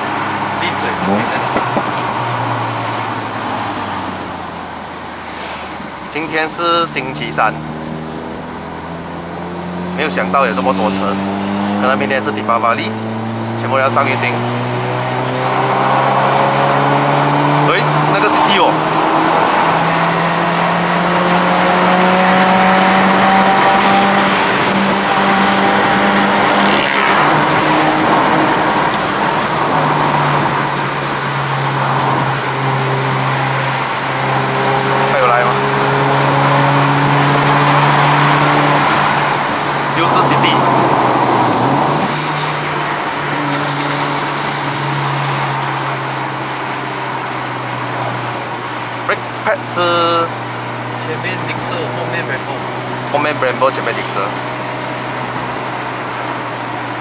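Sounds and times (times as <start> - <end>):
car engine revving under load: 0.0 - 57.0
road noise: 0.0 - 57.0.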